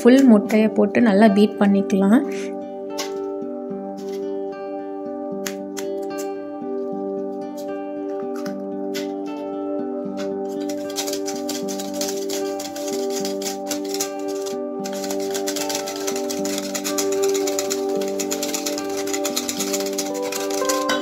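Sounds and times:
background music: 0.0s - 21.0s
whisk beating eggs in metal bowl: 10.5s - 21.0s.

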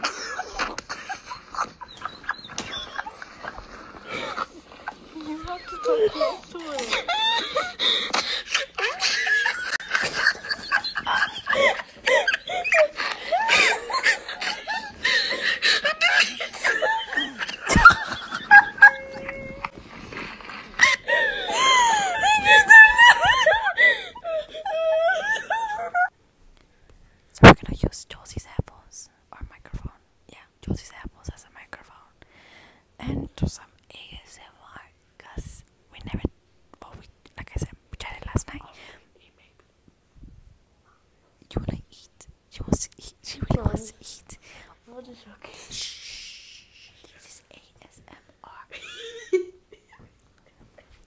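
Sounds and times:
woman whispering: 5.1s - 7.0s, 27.4s - 32.1s, 33.0s - 39.6s, 41.5s - 45.8s, 47.0s - 48.8s
girl squealing: 5.3s - 7.7s, 18.5s - 19.7s, 20.8s - 26.1s.

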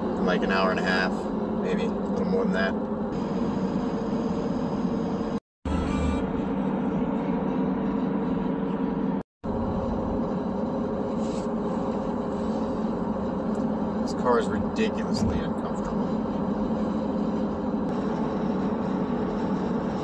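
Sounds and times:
low cabin hum: 0.0s - 20.0s
road and tyre noise: 0.0s - 20.0s.

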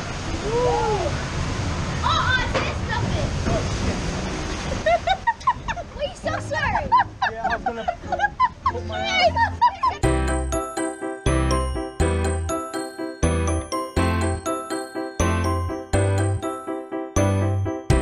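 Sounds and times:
water rushing and splashing: 0.0s - 9.6s.

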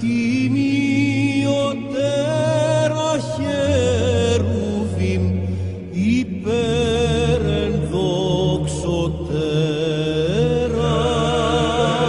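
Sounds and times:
low drone: 0.0s - 12.0s
person chanting a melody: 6.0s - 12.0s.

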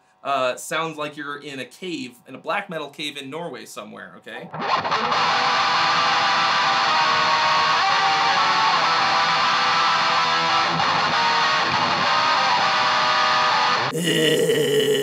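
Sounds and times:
distorted electric guitar: 4.5s - 15.0s.

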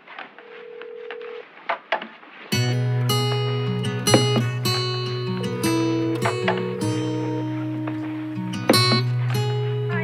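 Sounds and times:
telephone tone: 0.4s - 1.4s, 5.3s - 8.4s
strummed acoustic guitar music: 2.5s - 10.0s.

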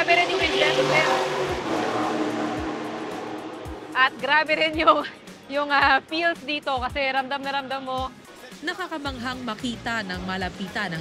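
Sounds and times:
background music with soft beat: 0.0s - 11.0s
loud rushing mechanical noise: 0.3s - 4.5s.

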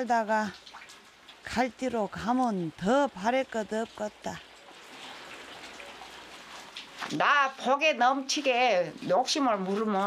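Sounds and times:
rain falling steadily: 0.0s - 10.0s.

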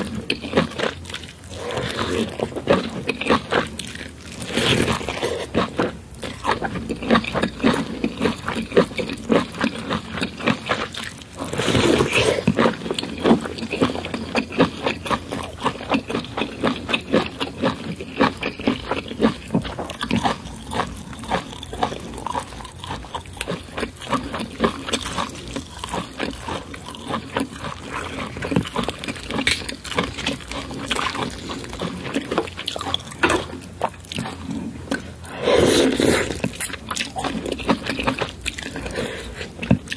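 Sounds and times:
wet chewing and mouth noises: 0.0s - 39.9s.

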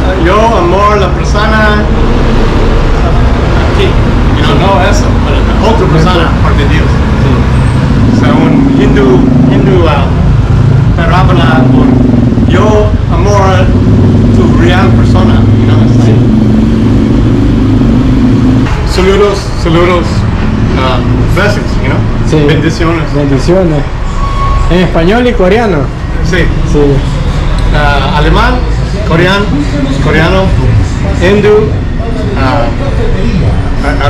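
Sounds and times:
low engine hum: 1.9s - 18.7s
man talking: 3.0s - 10.2s, 18.8s - 24.0s, 27.7s - 34.0s.

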